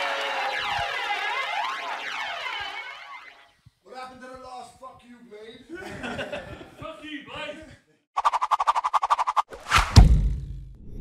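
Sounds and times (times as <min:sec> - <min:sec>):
swirling pitch sweep effect: 0:00.0 - 0:03.6.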